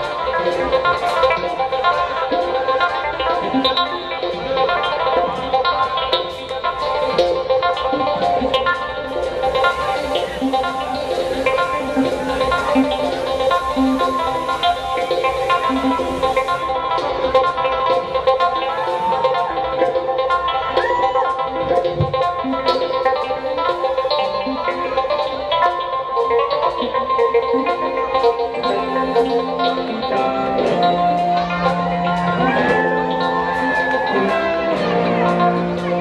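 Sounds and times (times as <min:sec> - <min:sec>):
drums and cymbals: 0:00.0 - 0:36.0
guitars: 0:00.0 - 0:36.0
live band playing: 0:00.0 - 0:36.0.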